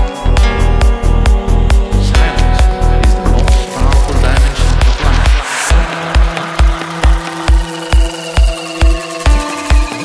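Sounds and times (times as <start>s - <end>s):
kick drum: 0.0s - 10.0s
rolling bassline: 0.0s - 10.0s
rising noise sweep: 2.9s - 9.7s.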